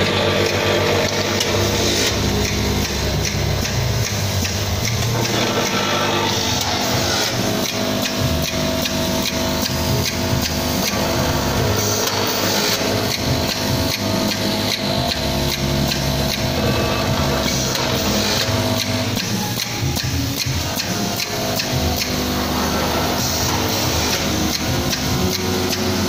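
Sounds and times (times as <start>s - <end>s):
machine humming: 0.0s - 26.0s.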